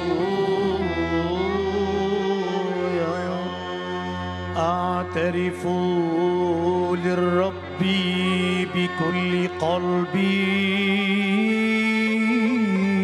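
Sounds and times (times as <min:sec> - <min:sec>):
keyboard drone: 0:00.0 - 0:13.0
person singing a hymn: 0:00.0 - 0:13.0
violin: 0:00.0 - 0:13.0.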